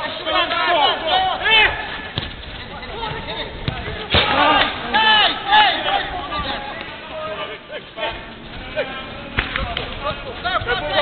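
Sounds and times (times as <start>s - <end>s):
players shouting: 0.0s - 11.0s
ball being kicked: 2.1s - 2.5s, 3.1s - 4.4s.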